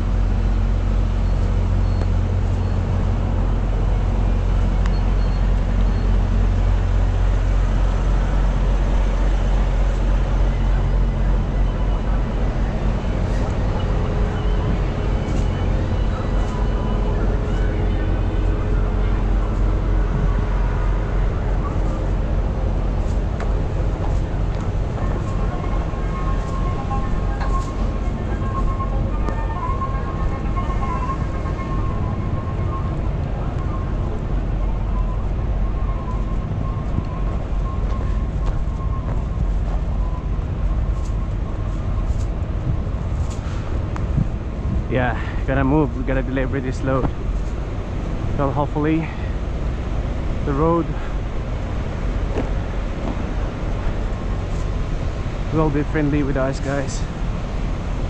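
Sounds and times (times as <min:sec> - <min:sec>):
diesel engines idling: 0:00.0 - 0:58.0.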